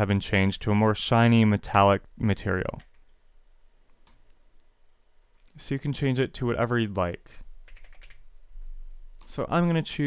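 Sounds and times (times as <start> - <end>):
computer mouse clicks: 3.9 - 4.4, 7.7 - 8.2.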